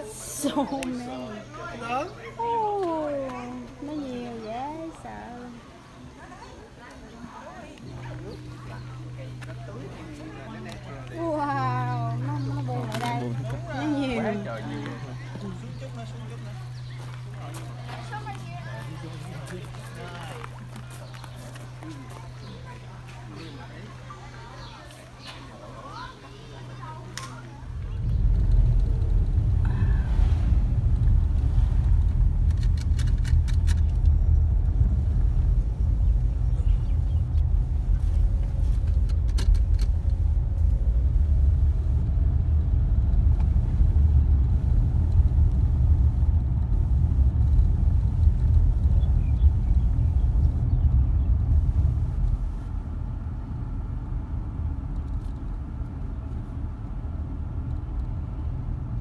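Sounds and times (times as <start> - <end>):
road and engine rumble in car: 25.8 - 59.0.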